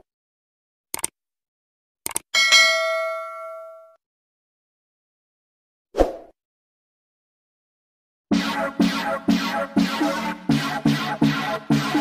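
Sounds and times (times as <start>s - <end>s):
bright bell ding: 2.4s - 4.0s.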